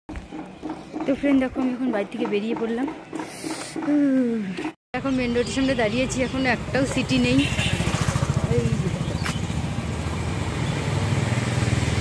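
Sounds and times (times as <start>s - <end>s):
vehicle engine running: 5.2s - 12.0s.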